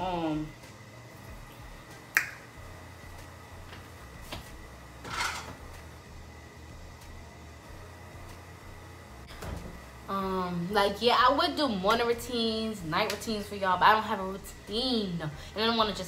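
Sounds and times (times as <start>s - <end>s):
steady low hum: 0.0s - 16.0s
scrape or clatter: 5.1s - 5.5s.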